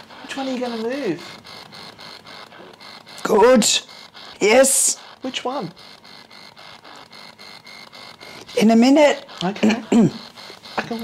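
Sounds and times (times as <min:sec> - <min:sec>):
choppy radio static: 0:00.0 - 0:11.0.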